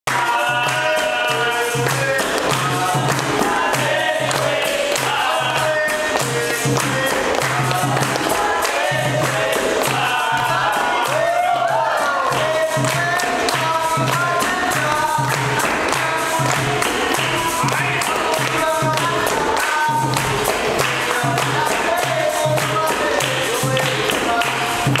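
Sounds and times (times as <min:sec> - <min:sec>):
group singing: 0:00.1 - 0:25.0
hand claps: 0:00.1 - 0:25.0
hand drum beat: 0:00.1 - 0:25.0.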